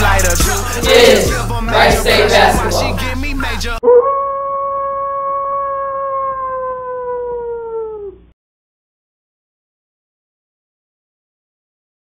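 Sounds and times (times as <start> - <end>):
hip-hop music with beat: 0.0 - 3.8
wolf howl sound effect: 3.8 - 8.3.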